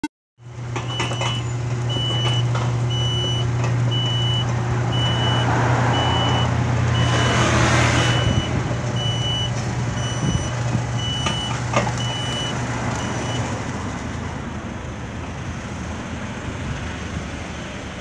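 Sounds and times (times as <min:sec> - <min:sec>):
gate motor humming: 0:00.5 - 0:13.2
short high warning beeps: 0:05.0 - 0:13.4.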